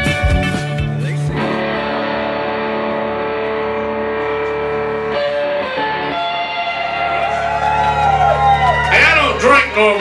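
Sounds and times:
electric guitar chord ringing: 0.0s - 8.9s.

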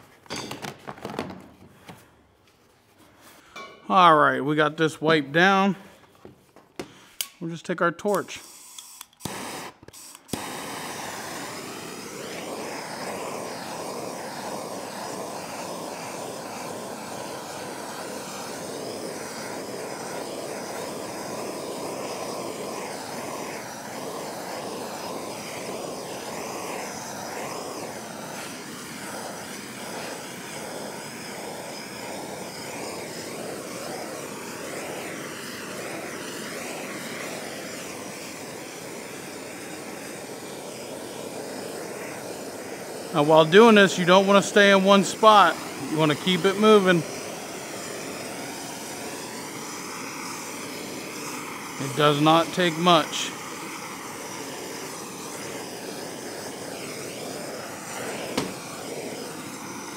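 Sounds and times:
gas torch flame hissing: 3.6s - 59.9s.

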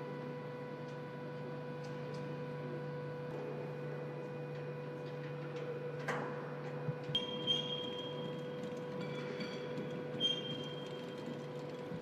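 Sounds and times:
machinery hum: 0.0s - 12.0s
high metal squeals: 7.2s - 11.5s.

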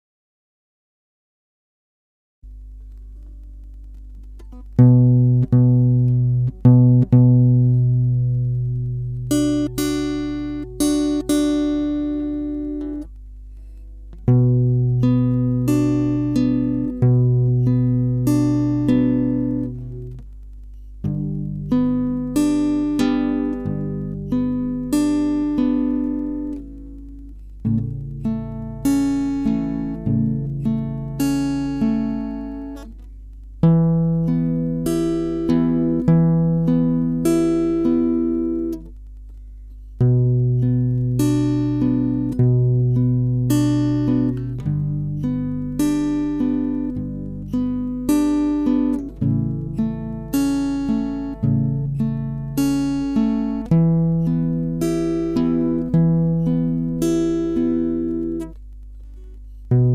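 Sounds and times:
acoustic guitar fingerpicked notes: 2.4s - 59.9s.

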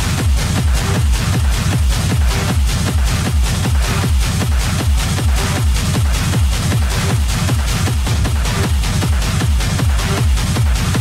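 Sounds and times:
hard techno music: 0.0s - 11.0s.

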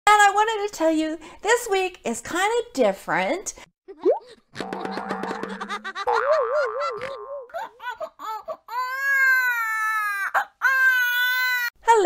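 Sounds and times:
infant crying: 8.2s - 11.7s.

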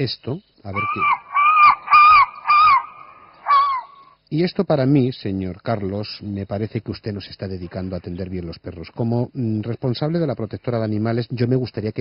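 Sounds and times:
animal cries over phone line: 0.8s - 4.2s.

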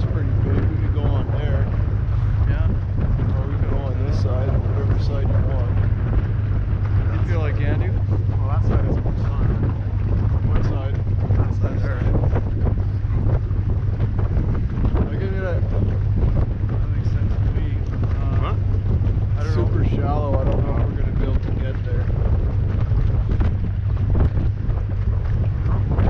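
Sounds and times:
boat engine droning: 0.0s - 26.0s
water rushing past hull: 0.0s - 26.0s
wind buffeting microphone: 0.0s - 26.0s.

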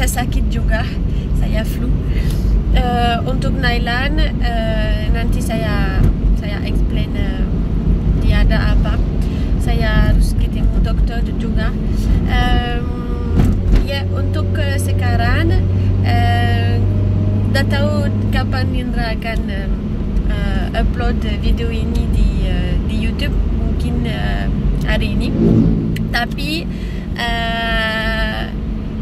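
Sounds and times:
car engine and road rumble: 0.0s - 29.0s
steady low hum: 0.0s - 29.0s
person talking: 2.7s - 7.5s, 9.6s - 16.8s, 20.3s - 28.5s.

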